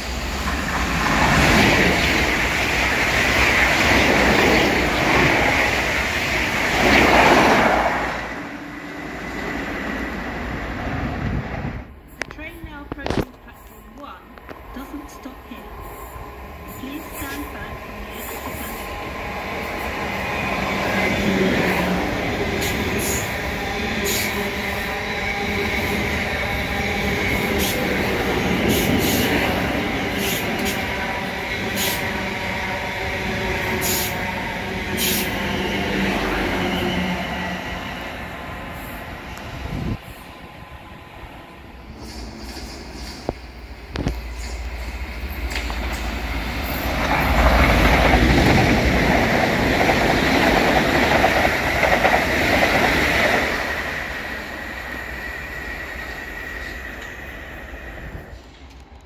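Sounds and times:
train wheels rushing on rail: 0.0 - 59.0
train whining tones: 13.0 - 59.0
sharp clicks of train wheels: 27.2 - 32.1, 42.0 - 55.0, 58.3 - 59.0.

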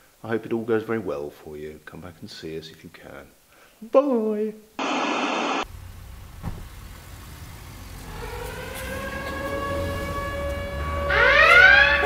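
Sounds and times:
static hiss burst: 4.8 - 5.7.

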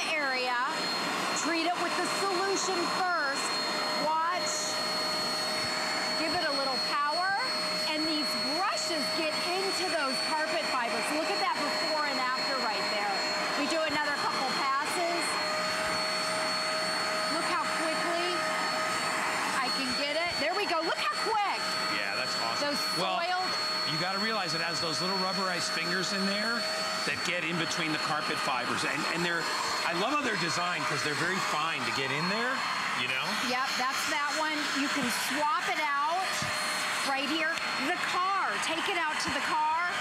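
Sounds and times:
carpet cleaner whining: 0.0 - 40.0.

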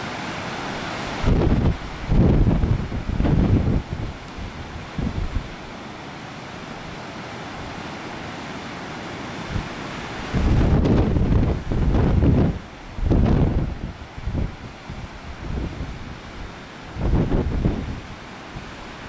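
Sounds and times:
breaking surf: 0.0 - 19.0
wind buffeting microphone: 1.2 - 5.6, 10.3 - 18.2.

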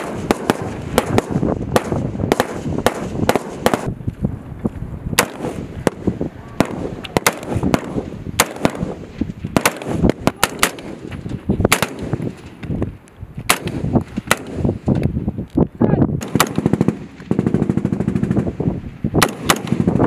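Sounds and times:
rifle shots: 0.0 - 4.0, 5.2 - 12.3, 13.5 - 14.8, 16.2 - 18.5, 19.2 - 20.0.

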